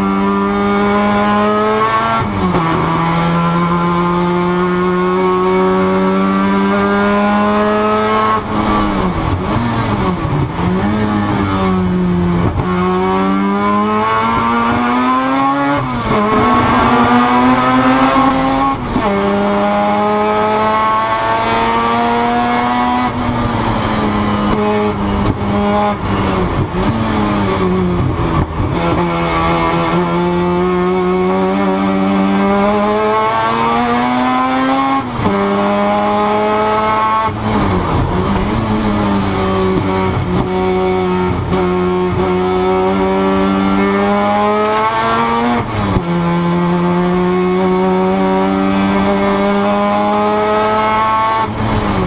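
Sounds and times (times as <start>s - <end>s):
rotary race car engine revving: 0.3s - 52.0s.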